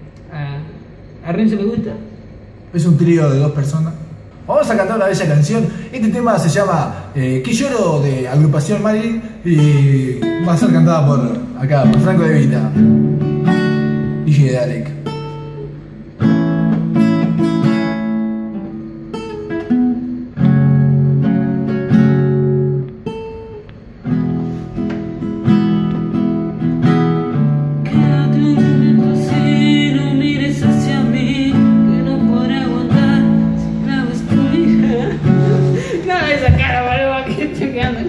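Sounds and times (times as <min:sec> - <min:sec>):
acoustic guitar strumming chords: 0:09.6 - 0:38.0.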